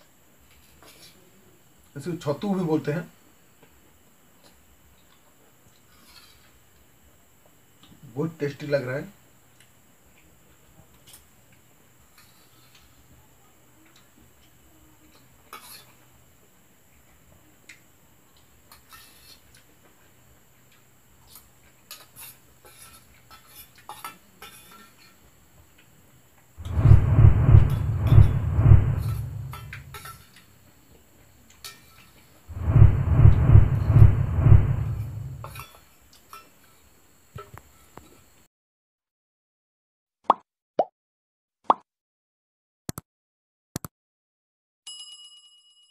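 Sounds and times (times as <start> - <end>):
loud bassy noise: 26.6 - 30.0, 32.5 - 35.6.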